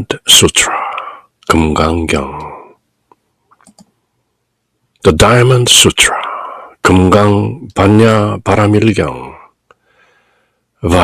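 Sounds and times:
computer mouse clicks: 3.1s - 4.0s.

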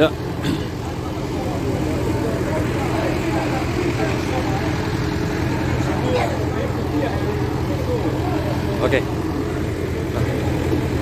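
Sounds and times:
fire truck engine running: 0.0s - 11.0s
people talking: 0.0s - 11.0s.

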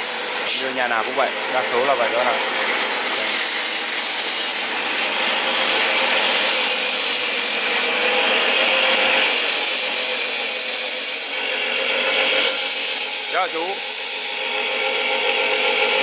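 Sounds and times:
bench grinder grinding steel: 0.0s - 16.0s.

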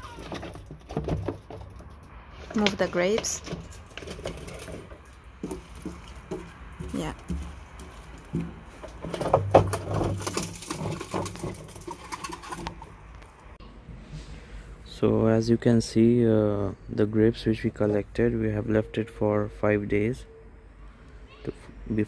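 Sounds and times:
grape crusher rollers crushing grapes: 0.0s - 13.2s.

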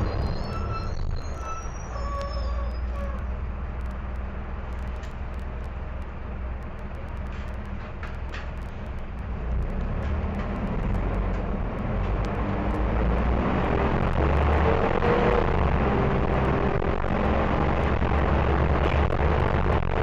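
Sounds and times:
bus diesel engine rumbling: 0.0s - 20.0s.

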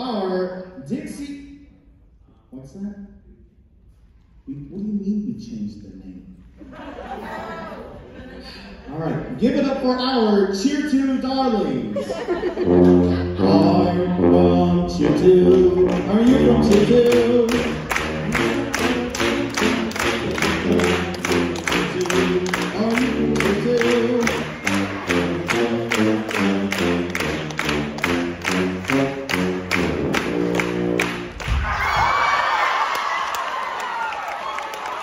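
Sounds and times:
audience cheering and applause: 15.6s - 35.0s.

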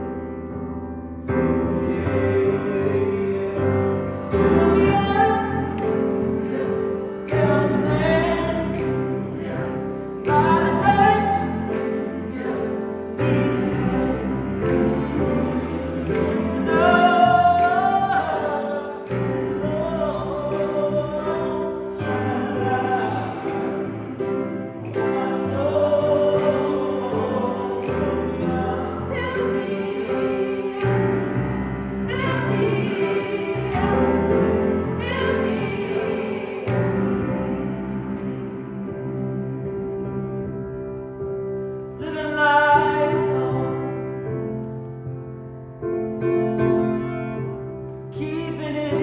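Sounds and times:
mixed choir singing: 1.5s - 40.4s.

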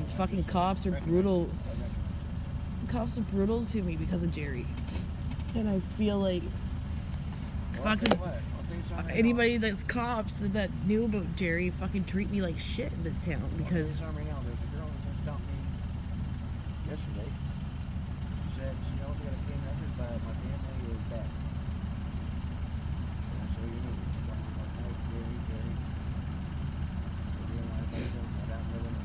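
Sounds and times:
vehicle engine idling: 0.0s - 29.0s
faint voices talking: 7.7s - 15.8s, 16.8s - 17.5s, 18.4s - 21.4s, 23.2s - 25.8s, 27.2s - 29.0s.

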